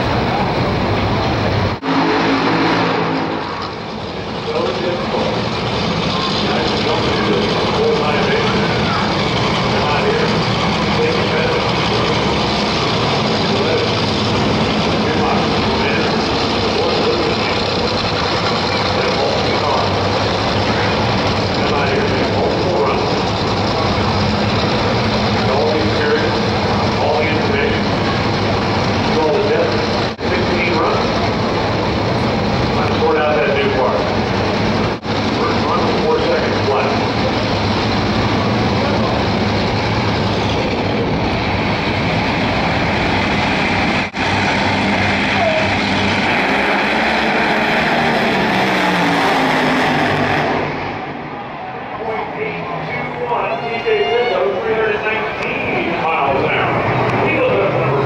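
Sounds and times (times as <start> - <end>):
dragster engine roaring: 0.0 - 58.0
person speaking: 52.0 - 58.0.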